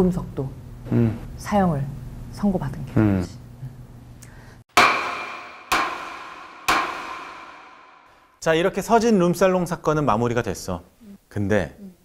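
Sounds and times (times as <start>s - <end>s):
gavel knocking on block: 4.7s - 8.0s.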